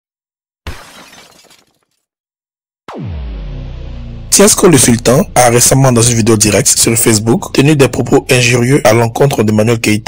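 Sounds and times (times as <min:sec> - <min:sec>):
shattering crash: 0:00.7 - 0:02.0.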